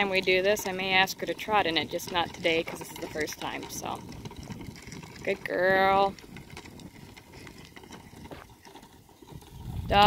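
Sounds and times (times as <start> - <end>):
hooves on sandy dirt: 0.0 - 10.0.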